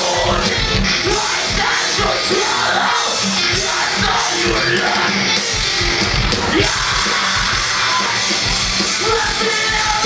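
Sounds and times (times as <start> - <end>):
distorted guitars: 0.0 - 10.0
pounding drums: 0.0 - 10.0
shouted screamed vocals: 0.0 - 10.0.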